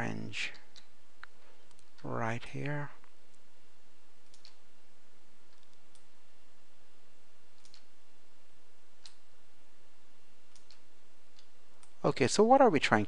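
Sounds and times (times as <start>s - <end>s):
low hiss and hum: 0.0s - 13.0s
computer mouse clicks: 0.5s - 2.7s, 4.2s - 4.7s, 5.5s - 6.1s, 7.5s - 8.0s, 9.0s - 9.2s, 10.5s - 12.0s.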